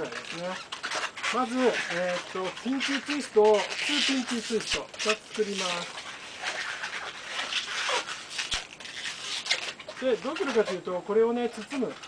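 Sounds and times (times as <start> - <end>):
balloon squeaking and rubbing: 0.0 - 12.0.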